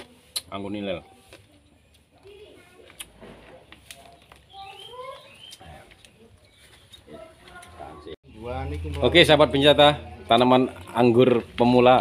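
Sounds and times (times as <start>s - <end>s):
bird calls: 4.1s - 7.4s.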